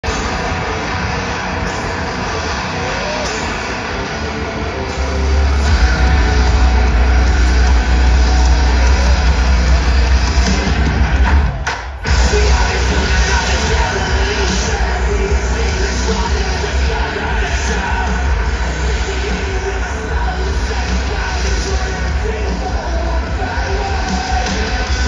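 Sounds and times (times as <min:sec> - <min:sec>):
deep bass drone: 0:00.0 - 0:11.4, 0:12.1 - 0:25.0
crowd noise: 0:00.0 - 0:25.0
live rock music over pa: 0:00.0 - 0:25.0.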